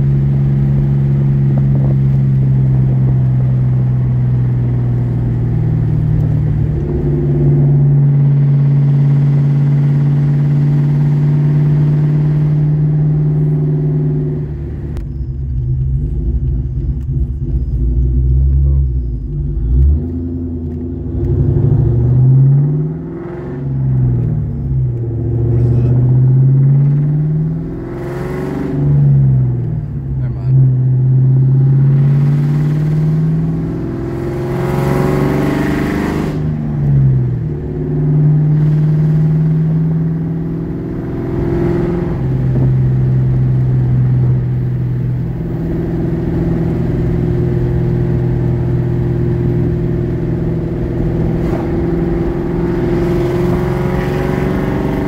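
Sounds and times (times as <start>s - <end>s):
car engine from inside cabin: 0.0s - 55.0s.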